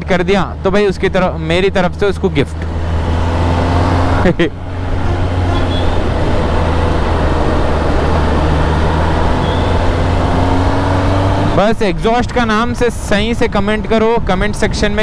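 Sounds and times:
motorcycle engine accelerating: 0:00.0 - 0:11.8.

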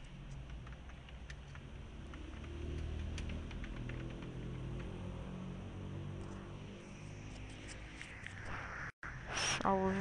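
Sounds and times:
keyboard and mouse clicking: 0:00.0 - 0:05.2.

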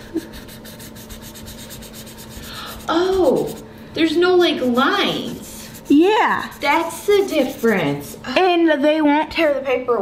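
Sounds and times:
marker scrubbing on paper: 0:00.2 - 0:03.6, 0:04.4 - 0:08.2.

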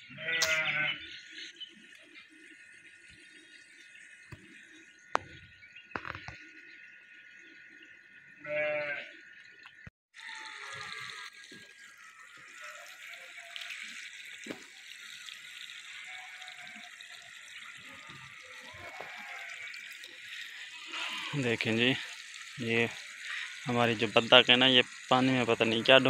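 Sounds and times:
water running and splashing: 0:00.2 - 0:26.0.

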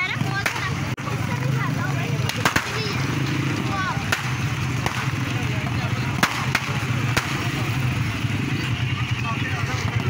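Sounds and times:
crowd chattering: 0:00.0 - 0:10.0
firecrackers cracking: 0:00.1 - 0:08.3.

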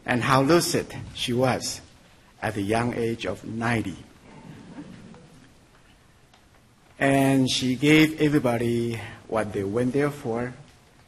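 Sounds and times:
soft audience stirring: 0:04.2 - 0:07.0.

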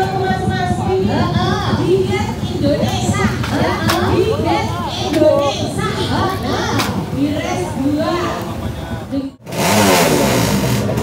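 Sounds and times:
voices chattering: 0:00.0 - 0:09.4.

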